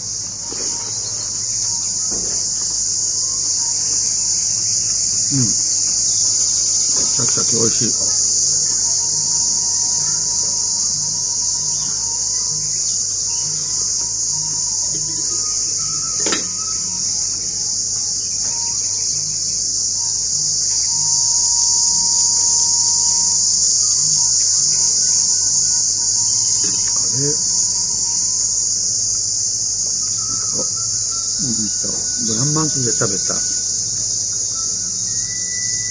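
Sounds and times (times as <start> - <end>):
high-pitched insect chorus: 0.0 - 35.9.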